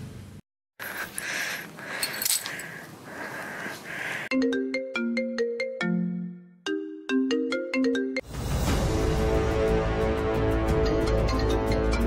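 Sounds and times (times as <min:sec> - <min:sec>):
mobile phone ringtone melody: 0:04.3 - 0:08.2.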